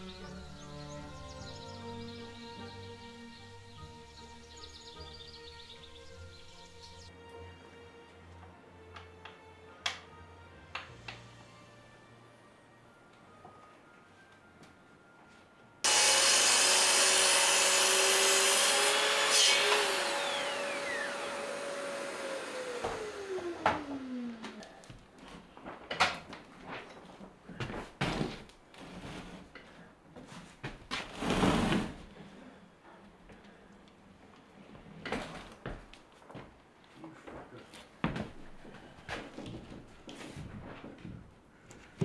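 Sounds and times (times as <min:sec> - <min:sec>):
mitre saw motor whine: 0:15.9 - 0:24.5
dust extractor running: 0:15.9 - 0:24.6.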